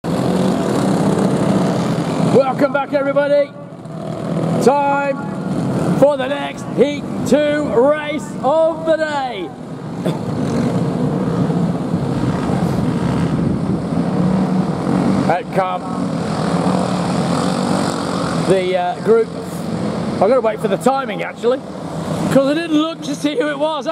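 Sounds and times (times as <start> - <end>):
kart engines running: 0.0 - 23.9.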